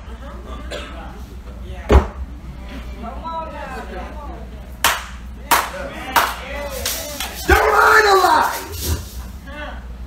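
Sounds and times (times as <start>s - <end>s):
sharp hand claps: 4.8s - 7.6s.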